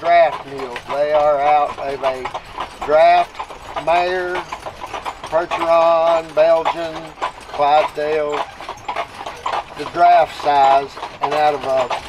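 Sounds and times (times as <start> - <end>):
hooves clip-clopping on pavement: 0.0 - 12.0.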